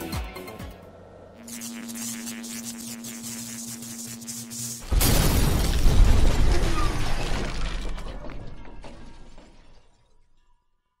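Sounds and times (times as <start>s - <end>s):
glass shattering crash: 4.9s - 10.5s.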